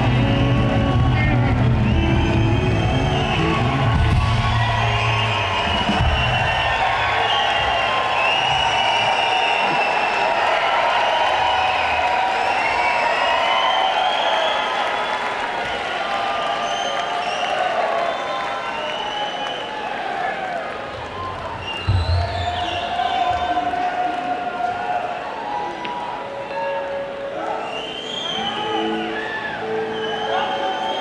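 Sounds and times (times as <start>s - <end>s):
live rock band: 0.0s - 6.8s
crowd cheering and whooping: 0.0s - 31.0s.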